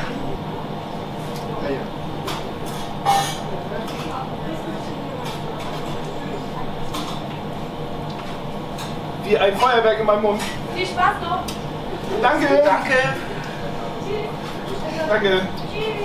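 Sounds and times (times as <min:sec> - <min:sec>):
room hum: 0:00.0 - 0:16.0.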